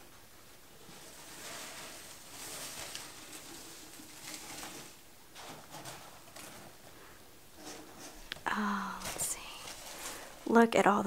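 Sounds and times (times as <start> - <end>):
paper rustling and crinkling: 0.8 - 10.6.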